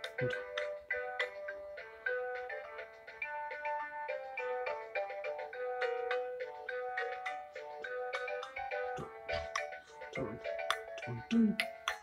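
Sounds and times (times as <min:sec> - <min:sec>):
toy playing electronic beeping tune: 0:00.0 - 0:12.0.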